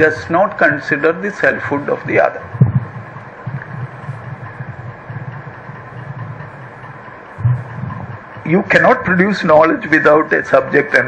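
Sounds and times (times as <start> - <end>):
low unsteady rumble: 0.0 - 11.0.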